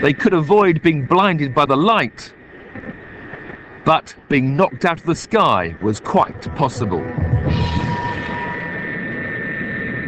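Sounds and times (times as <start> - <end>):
high engine whine: 0.0 - 10.0
turboprop engines droning: 0.0 - 10.0.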